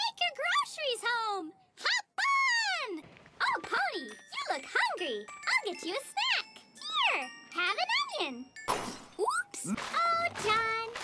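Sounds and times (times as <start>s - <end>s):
tinkling jingly music: 3.6s - 10.8s.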